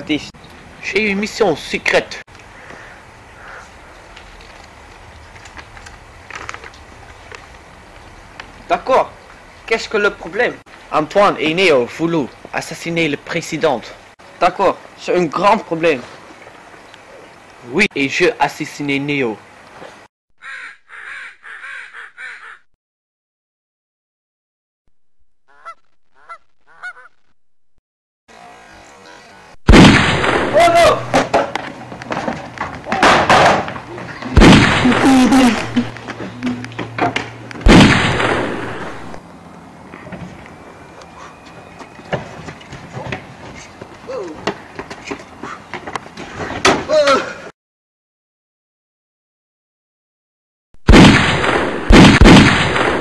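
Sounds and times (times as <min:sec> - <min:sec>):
loud slam: 0:29.7 - 0:31.5, 0:34.4 - 0:35.3, 0:37.6 - 0:39.0, 0:50.9 - 0:53.0
person crying out: 0:44.1 - 0:44.4, 0:46.9 - 0:47.5.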